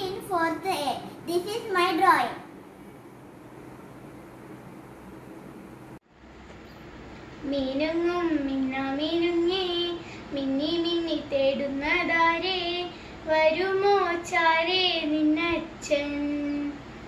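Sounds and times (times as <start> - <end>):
girl singing unaccompanied: 0.0 - 2.4, 7.4 - 16.9.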